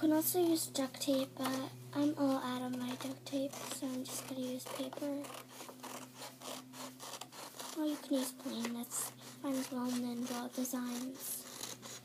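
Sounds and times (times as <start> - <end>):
paper scratching on cardboard: 0.4 - 12.0.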